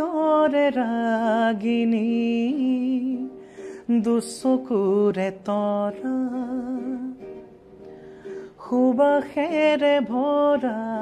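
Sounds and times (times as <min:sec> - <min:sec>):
man singing with vibrato: 0:00.0 - 0:07.4, 0:08.4 - 0:11.0
soft acoustic guitar: 0:00.0 - 0:11.0.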